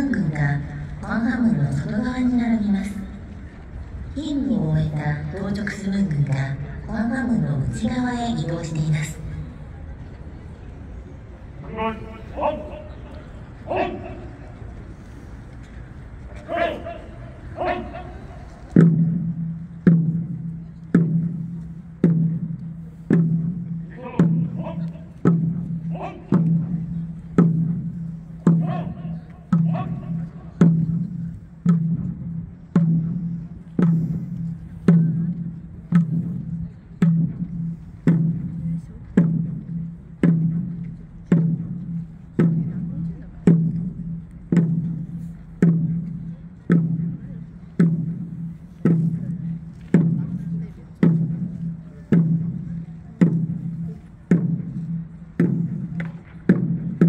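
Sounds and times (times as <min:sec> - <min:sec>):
large drum beaten at march pace: 0:16.4 - 0:57.0.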